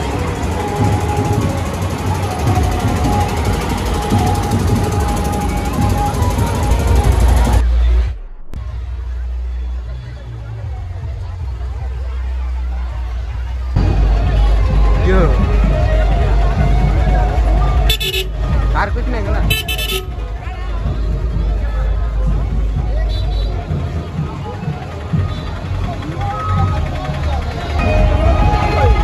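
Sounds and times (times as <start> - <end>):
crowd voices: 0.0 - 29.0
bass-heavy dance music: 2.4 - 29.0.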